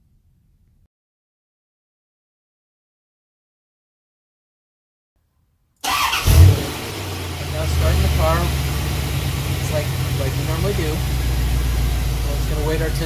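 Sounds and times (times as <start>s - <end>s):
car engine starting and idling: 5.8s - 13.0s.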